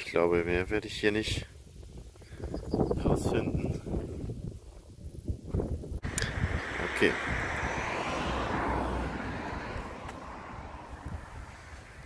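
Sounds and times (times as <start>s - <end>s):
vehicle passing: 6.0s - 12.0s.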